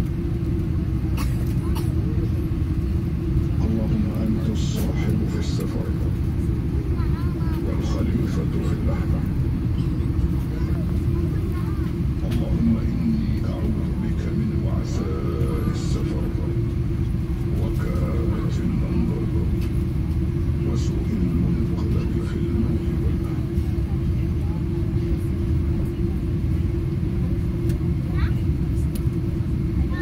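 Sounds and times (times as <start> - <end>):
airliner engine rumble in cabin: 0.0 - 30.0.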